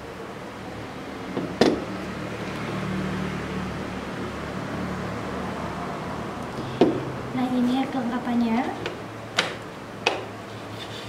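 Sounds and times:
sharp knock of parts: 9.4 - 10.3.

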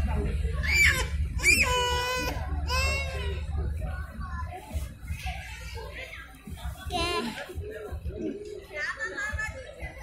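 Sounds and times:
faint voice sounds: 0.0 - 10.0.

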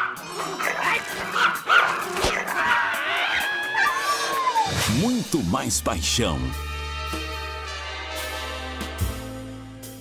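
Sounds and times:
small dog yapping: 0.0 - 4.7.

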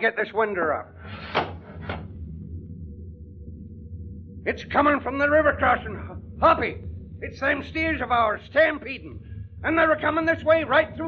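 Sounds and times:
distant stampede rumble: 0.7 - 11.0
wooden window scraping: 1.1 - 2.0.

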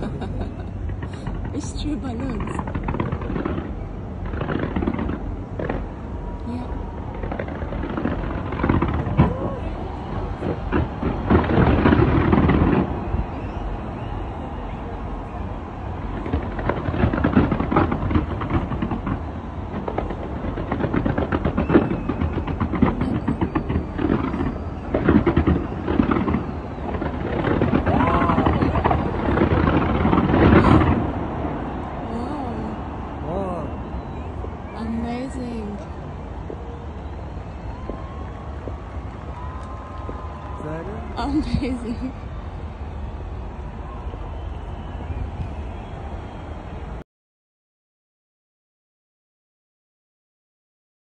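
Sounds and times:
fireworks rumble of bangs: 0.0 - 47.0
sharp firework reports: 0.0 - 47.0.

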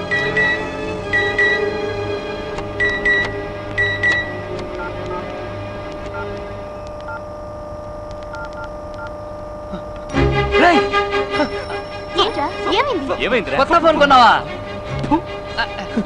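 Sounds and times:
film score music: 0.0 - 7.5, 9.7 - 16.0
low steady drone: 0.0 - 16.0
phone keypad two-tone beeps: 2.8 - 5.2.

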